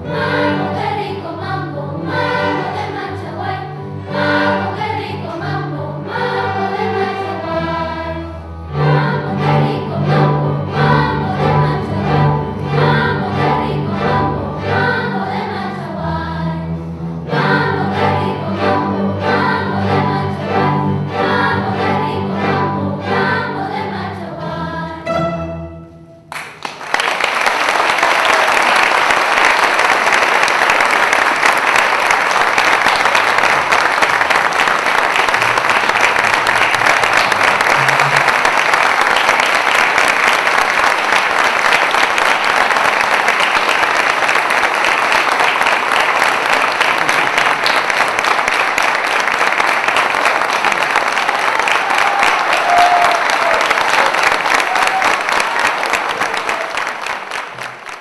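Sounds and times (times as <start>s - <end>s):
audience applauding: 26.3s - 58.0s.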